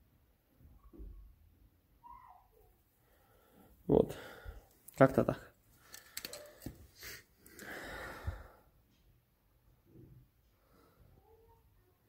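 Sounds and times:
person exhaling close to microphone: 0:07.0 - 0:08.6.

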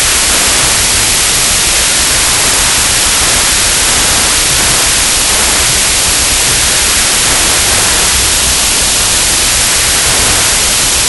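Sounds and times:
torch flame hissing: 0:00.0 - 0:11.0.

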